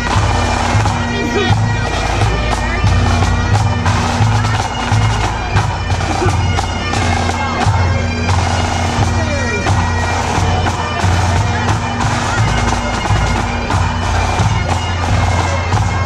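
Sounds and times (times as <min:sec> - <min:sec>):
bagpipes playing over drones: 0:00.0 - 0:16.0
faint crowd voices: 0:00.0 - 0:16.0.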